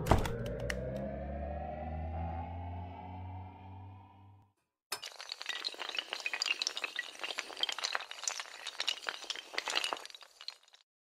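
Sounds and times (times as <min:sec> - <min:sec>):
low synth drone: 0:00.0 - 0:04.5
rising synth tone: 0:00.0 - 0:04.5.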